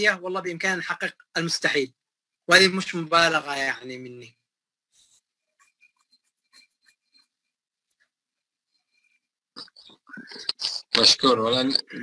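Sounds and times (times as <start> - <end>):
person speaking: 0.0 - 4.4, 9.6 - 12.0.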